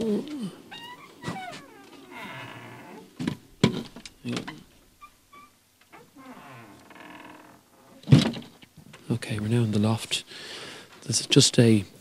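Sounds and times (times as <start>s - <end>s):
wooden door creaking: 0.7s - 8.6s.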